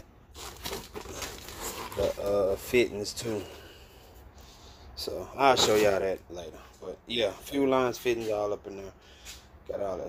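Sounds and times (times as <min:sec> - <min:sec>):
cardboard boxes crinkling and rustling: 0:00.3 - 0:03.4.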